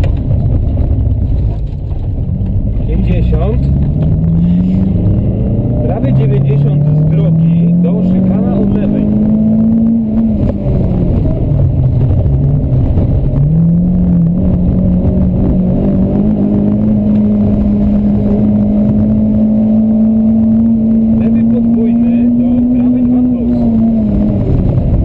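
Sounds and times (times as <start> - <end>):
rally car engine revving: 0.0 - 25.0.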